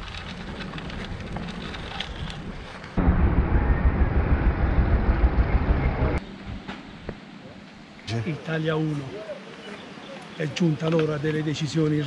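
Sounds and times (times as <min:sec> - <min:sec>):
wind and road noise: 0:00.0 - 0:12.0
low pulsing rumble: 0:00.2 - 0:06.6.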